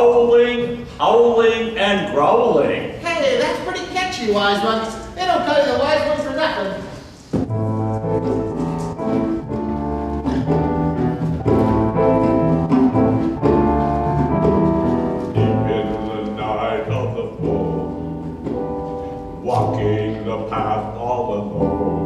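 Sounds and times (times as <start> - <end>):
live band instrumental music: 7.5 - 15.4.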